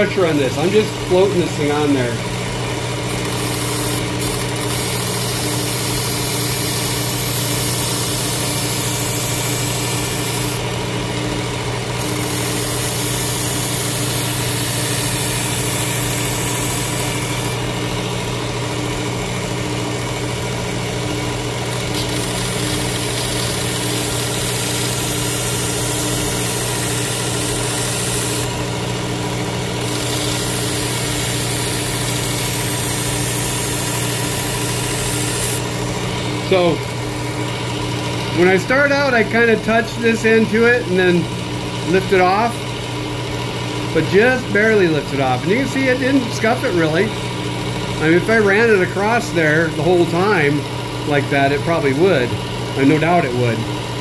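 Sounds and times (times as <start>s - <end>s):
electric sharpener motor hum: 0.0s - 51.1s.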